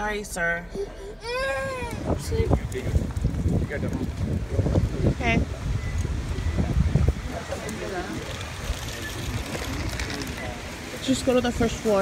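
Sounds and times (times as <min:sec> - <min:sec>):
wind buffeting microphone: 0:01.2 - 0:12.0.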